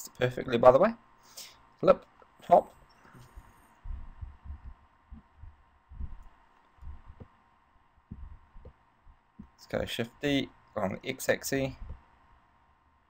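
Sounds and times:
dull low thumps on desk: 3.2s - 7.4s, 8.1s - 9.6s.

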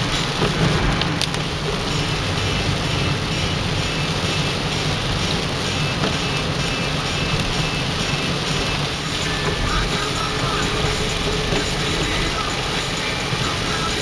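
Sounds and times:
car running noise: 0.0s - 14.0s
heavy rain on car roof: 0.0s - 14.0s
tyre hiss on wet road: 0.0s - 14.0s.

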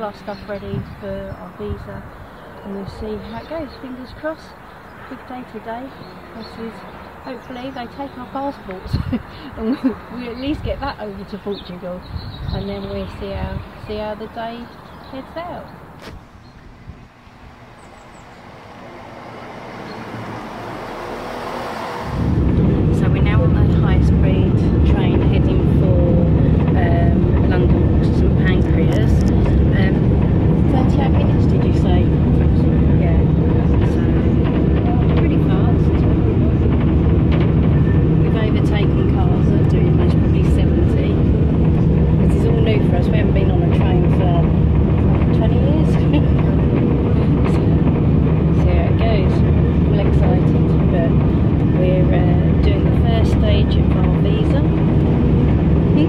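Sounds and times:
train rumble and hum: 0.0s - 56.0s.

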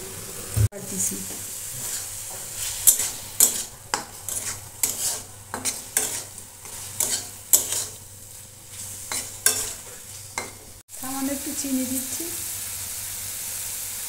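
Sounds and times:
low sizzle of frying: 0.0s - 14.0s
spatula scraping metal pan: 1.8s - 8.1s, 8.7s - 10.6s.

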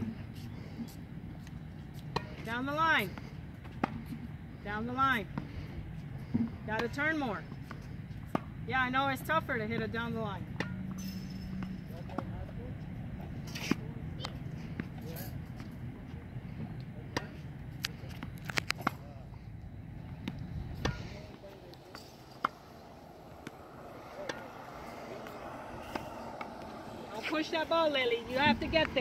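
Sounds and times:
tennis ball bouncing on hard court: 7.6s - 8.5s
racket hitting tennis ball: 7.6s - 8.6s, 10.5s - 12.2s, 20.2s - 27.8s
low rumble: 19.6s - 29.0s.

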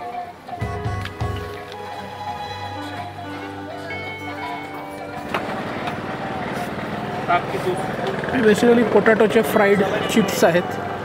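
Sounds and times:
engine running: 2.7s - 9.6s.

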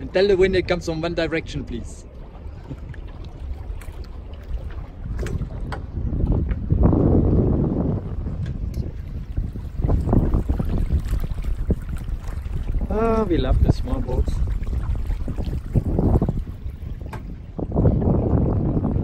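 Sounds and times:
water washing along hull: 0.0s - 19.0s
wind buffeting microphone: 0.0s - 19.0s.

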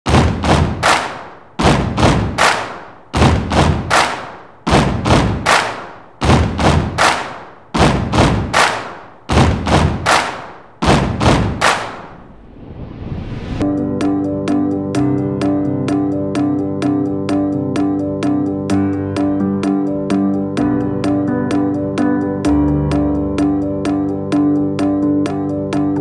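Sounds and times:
heavy drum hits: 0.1s - 12.1s.

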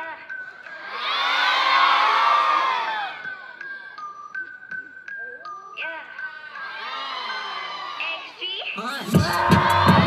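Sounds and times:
audience cheering and screaming: 0.8s - 3.4s, 6.7s - 8.3s, 9.0s - 10.0s.

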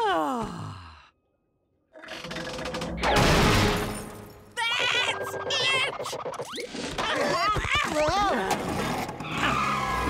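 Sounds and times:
cartoon warbling cries: 4.6s - 6.0s.

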